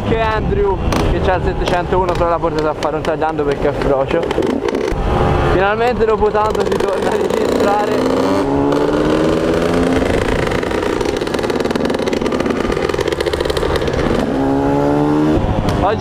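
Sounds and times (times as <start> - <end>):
motorcycle engine accelerating: 0.0 - 16.0.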